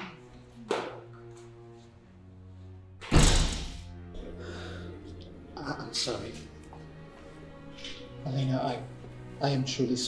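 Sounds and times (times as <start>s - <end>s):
soft background music: 0.0s - 10.0s
heavy thud: 3.1s - 3.9s.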